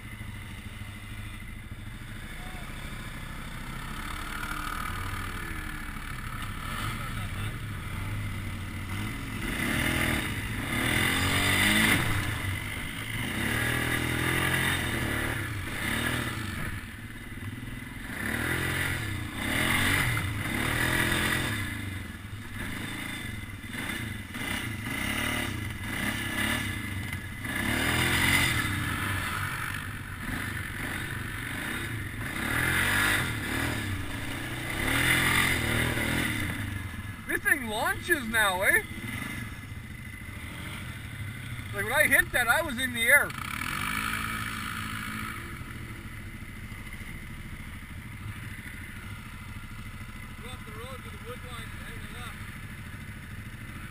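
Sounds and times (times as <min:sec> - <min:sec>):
quad engine revving: 0:00.0 - 0:47.2, 0:48.2 - 0:53.9.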